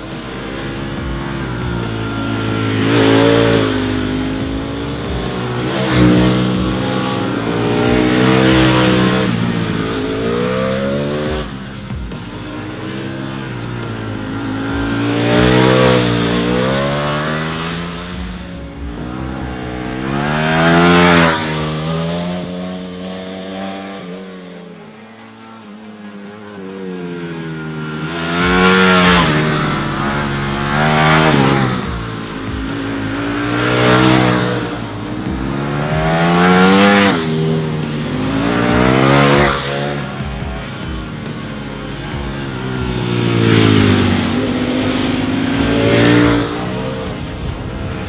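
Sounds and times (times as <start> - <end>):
motorcycle engine revving hard: 0.0 - 48.0.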